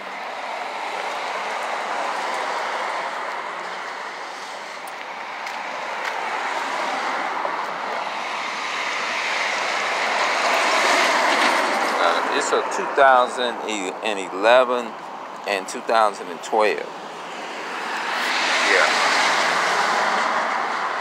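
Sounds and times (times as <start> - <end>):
cars passing: 0.0 - 21.0.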